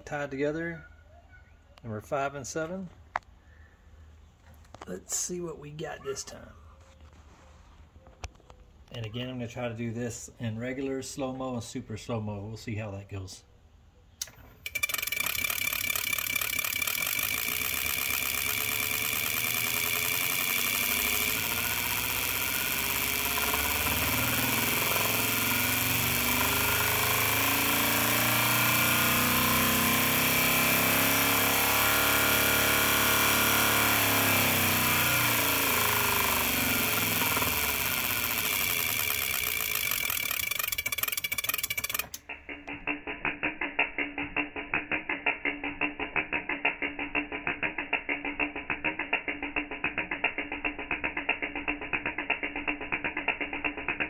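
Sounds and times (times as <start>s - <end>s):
regular clicking: 14.2s - 54.0s
spark plugs buzzing rattle: 14.2s - 54.0s.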